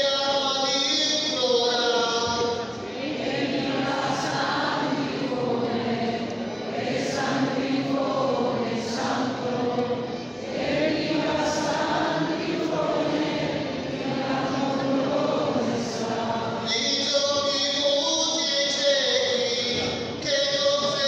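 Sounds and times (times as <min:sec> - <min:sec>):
group singing a slow hymn: 0:01.2 - 0:20.0.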